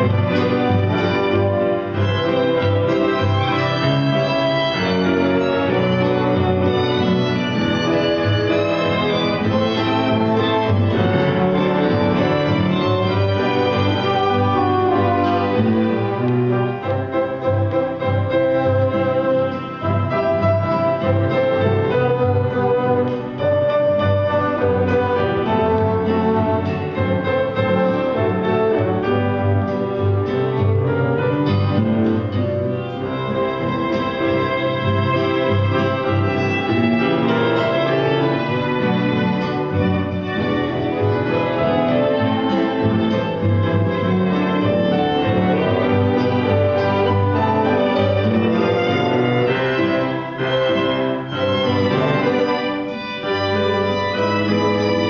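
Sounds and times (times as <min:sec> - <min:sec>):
chamber ensemble folk music: 0:00.0 - 0:55.0.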